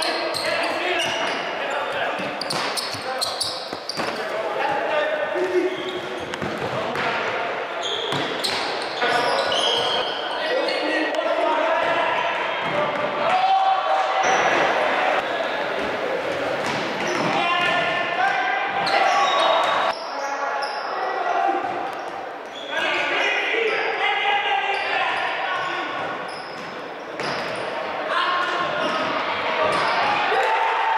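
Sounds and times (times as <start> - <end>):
sports shoes squeaking on court: 0.0 - 4.4, 5.4 - 6.6, 7.8 - 10.9, 25.6 - 27.8
people shouting in hall: 11.4 - 15.6, 28.0 - 30.9.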